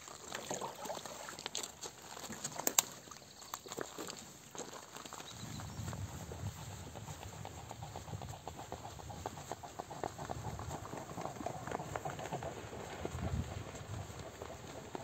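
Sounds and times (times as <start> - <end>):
swan feet and wings slapping water: 0.0 - 15.0
wind on microphone: 5.3 - 15.0.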